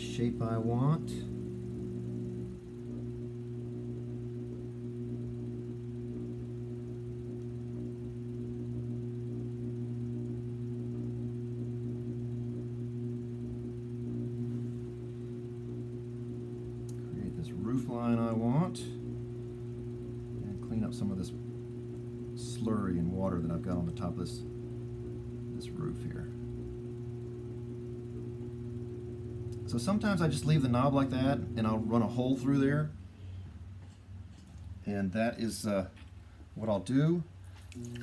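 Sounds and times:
potter's wheel motor humming: 0.0s - 38.0s.

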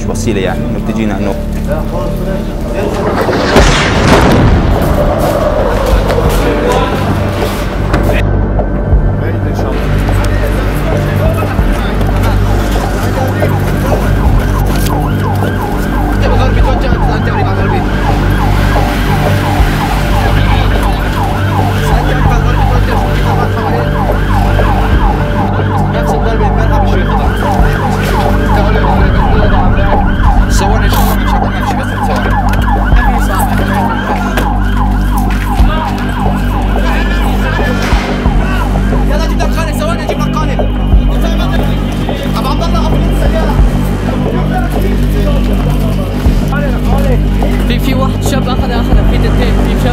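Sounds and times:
ambulance siren wailing: 0.9s - 8.6s, 9.7s - 49.9s.

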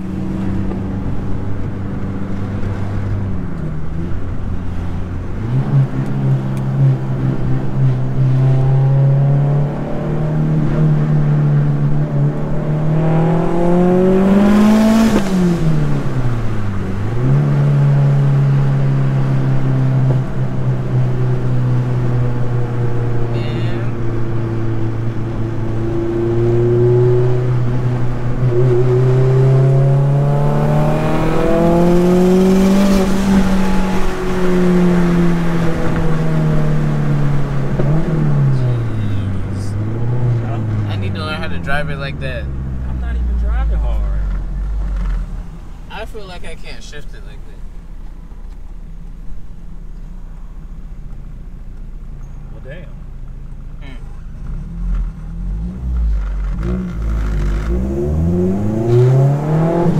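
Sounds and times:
car engine revving in cabin: 0.0s - 59.9s.

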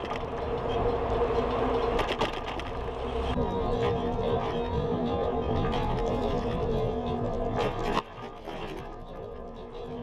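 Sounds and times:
tyres rolling on asphalt: 0.0s - 10.0s.

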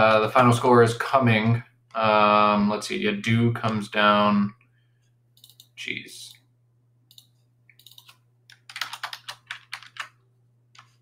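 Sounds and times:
computer keyboard typing: 7.1s - 10.2s.

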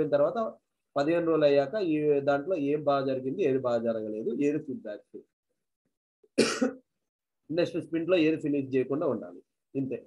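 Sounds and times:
person coughing: 6.4s - 6.8s.

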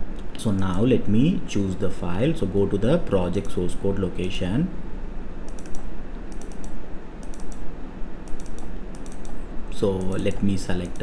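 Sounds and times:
low background hum: 0.0s - 11.0s
computer mouse clicks: 5.5s - 9.4s, 10.0s - 11.0s.

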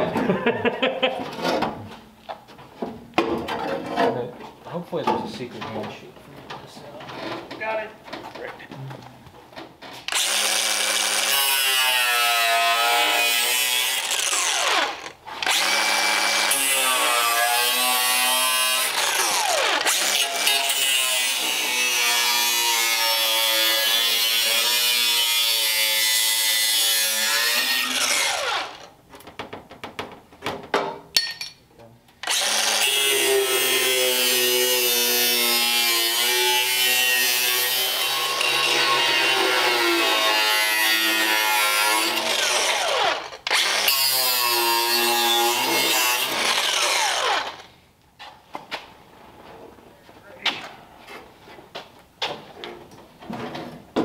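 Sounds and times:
angle grinder grinding steel: 10.1s - 28.8s, 32.2s - 47.7s.

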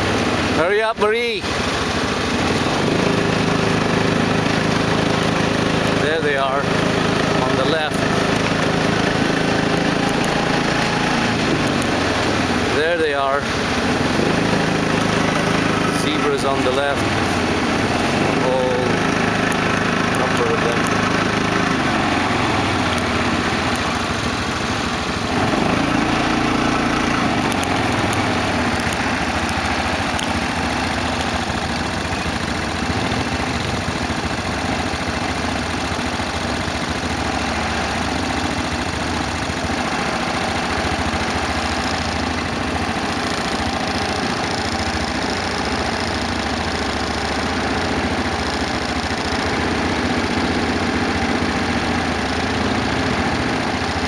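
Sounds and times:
quad bike engine idling: 0.0s - 54.0s.

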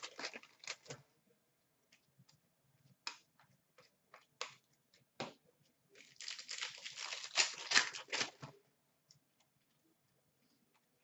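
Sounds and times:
wrapper tearing and crinkling: 0.0s - 0.9s, 6.0s - 8.4s.

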